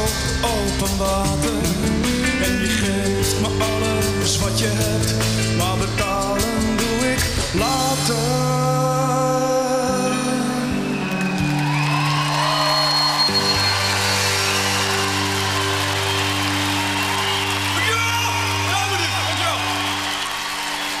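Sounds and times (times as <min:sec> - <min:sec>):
rock band sustained chords: 0:00.0 - 0:21.0
crowd cheering and whooping: 0:10.7 - 0:21.0.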